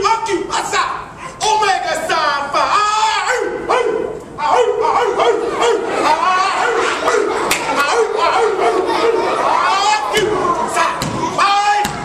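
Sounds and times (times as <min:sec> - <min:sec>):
person barking like a dog: 0:03.3 - 0:05.9.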